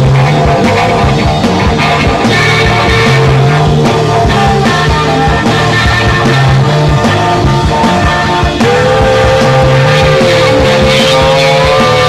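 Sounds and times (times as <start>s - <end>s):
distorted electric guitar note: 0.0s - 12.0s
steady drum beat: 0.0s - 12.0s.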